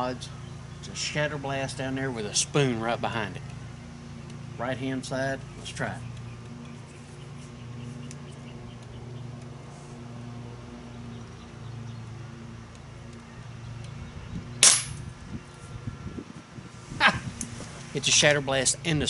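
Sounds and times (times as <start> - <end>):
air pistol shot: 14.6 - 15.0.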